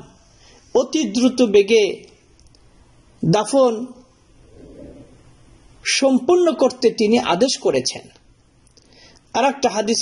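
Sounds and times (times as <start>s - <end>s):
man lecturing: 0.0s - 2.2s, 3.2s - 4.1s, 5.8s - 8.2s, 9.3s - 10.0s
faint low murmur: 3.9s - 6.0s.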